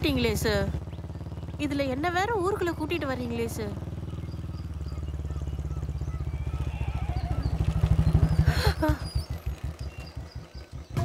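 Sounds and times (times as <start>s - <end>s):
motorcycle riding past: 0.0s - 11.0s.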